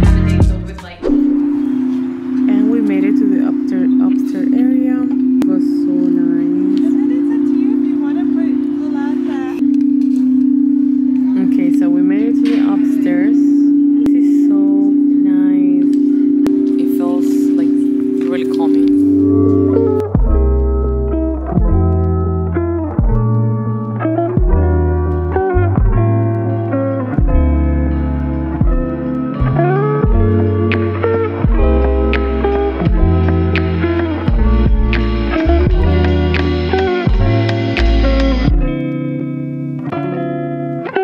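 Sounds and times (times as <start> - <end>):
guitar music: 0.0 - 41.0.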